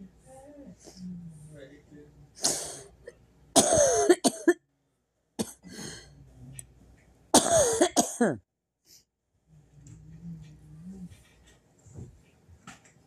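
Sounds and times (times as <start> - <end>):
person coughing loudly: 3.6 - 4.6, 7.4 - 8.4.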